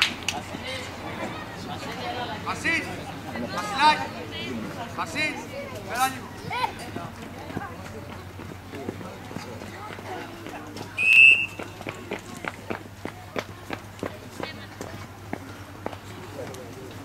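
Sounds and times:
faint voices: 0.0s - 17.0s
children's feet running: 5.4s - 17.0s
sports whistle blast: 11.0s - 11.7s.

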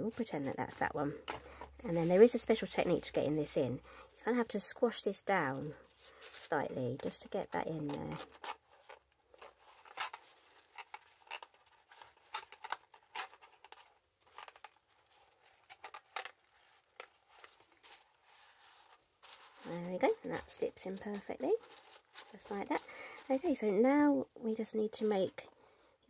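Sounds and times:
plastic and cardstock rustling: 0.0s - 3.5s, 5.7s - 25.6s.

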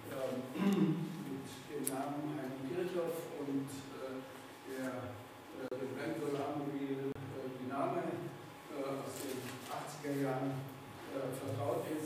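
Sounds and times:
man lecturing: 0.0s - 12.0s.

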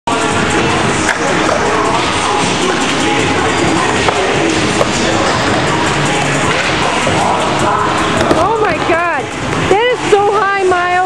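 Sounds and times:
loud music: 0.1s - 11.0s.

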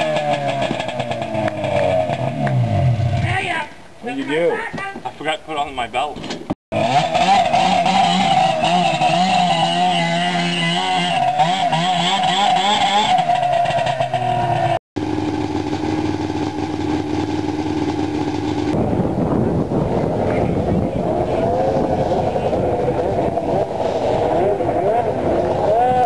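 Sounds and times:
snowmobile engine revving: 0.0s - 3.4s, 6.7s - 26.0s
steady engine drone: 6.7s - 26.0s.

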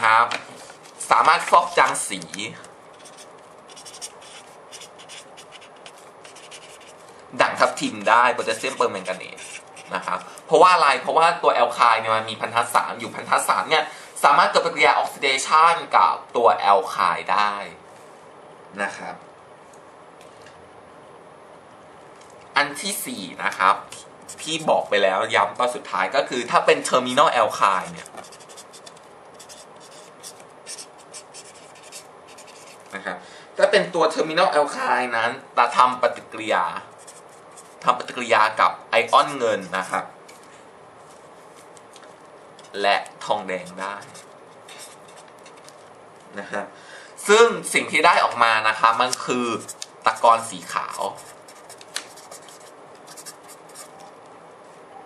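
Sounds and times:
pen scratching on paper: 2.9s - 7.0s, 8.0s - 10.3s, 24.2s - 24.8s, 28.2s - 32.9s, 37.0s - 37.9s, 43.6s - 45.6s, 49.5s - 54.0s.

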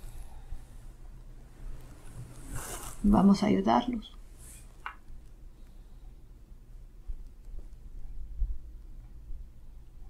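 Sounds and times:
low room hum: 0.0s - 10.0s
fabric brushing microphone: 1.9s - 3.4s.

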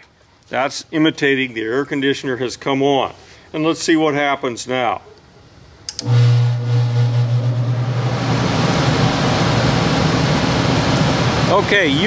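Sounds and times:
furnace blower motor hum: 5.9s - 12.0s
rush of air from blower: 6.0s - 11.7s.

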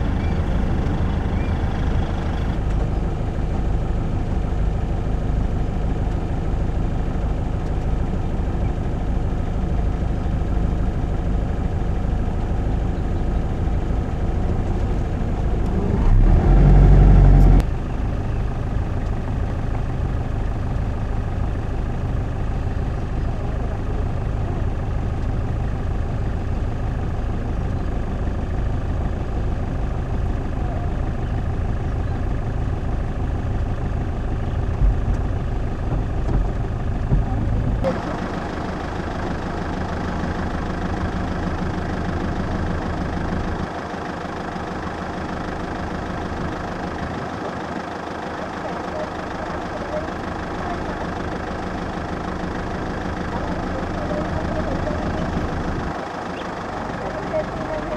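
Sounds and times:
vehicle engine idling: 0.0s - 57.9s.

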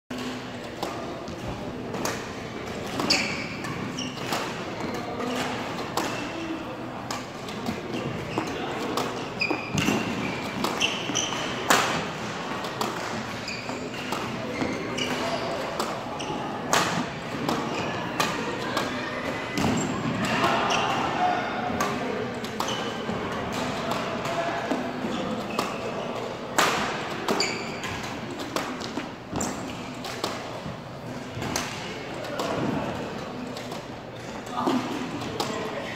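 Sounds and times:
racket hitting shuttlecock: 0.2s - 34.0s.

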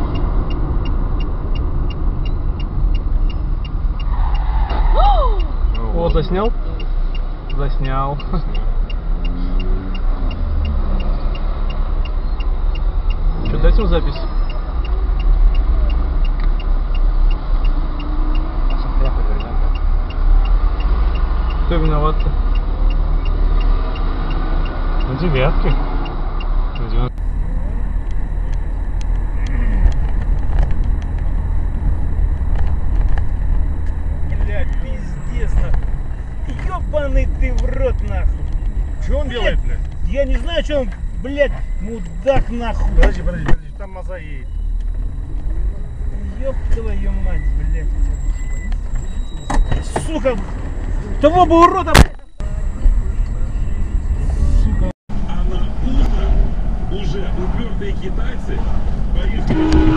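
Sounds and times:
light regular ticking: 0.0s - 54.2s
engine and road rumble: 0.0s - 59.9s
voices: 4.0s - 19.8s, 20.5s - 25.9s, 26.8s - 59.9s.

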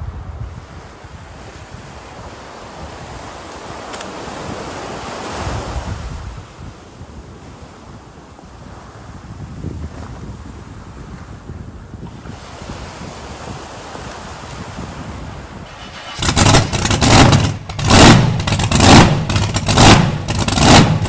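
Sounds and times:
waves washing on beach: 0.0s - 20.6s
wind on microphone: 0.0s - 21.0s
engine-like revving sound effect: 15.7s - 21.0s.

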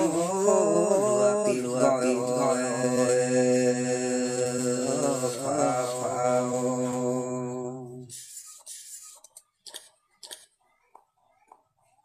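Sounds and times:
person singing folk song: 0.0s - 8.2s.

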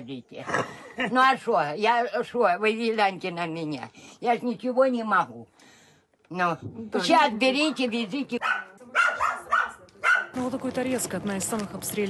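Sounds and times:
woman's voice: 6.3s - 9.6s, 10.3s - 12.0s
dog barking: 8.4s - 10.4s.

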